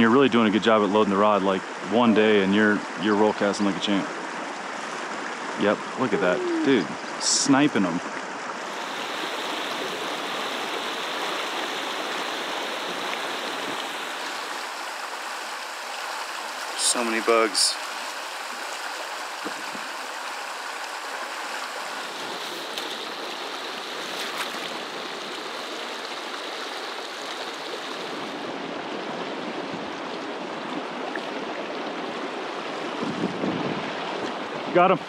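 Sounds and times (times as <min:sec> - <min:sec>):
stream water rushing: 0:00.0 - 0:35.0.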